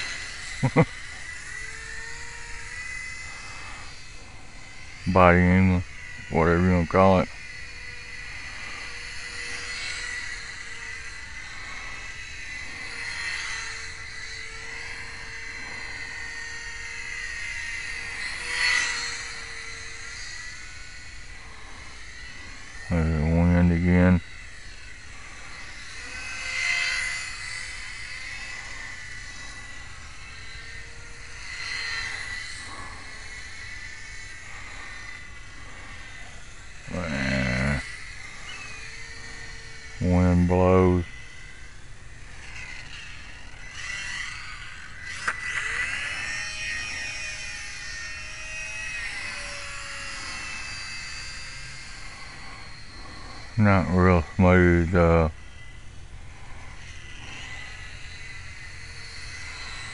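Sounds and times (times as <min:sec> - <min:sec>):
model airplane motor whining: 0:00.0 - 0:59.9.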